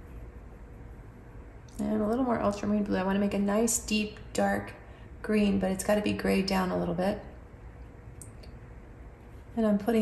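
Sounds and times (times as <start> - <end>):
woman's voice: 1.7 - 7.3, 9.6 - 10.0.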